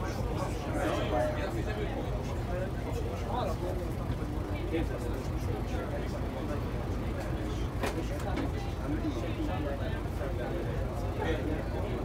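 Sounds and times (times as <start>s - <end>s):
bus diesel engine idling: 0.0s - 12.0s.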